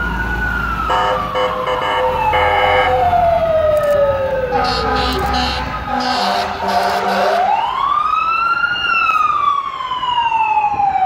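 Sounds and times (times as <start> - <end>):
fire engine siren wailing: 0.0 - 11.0.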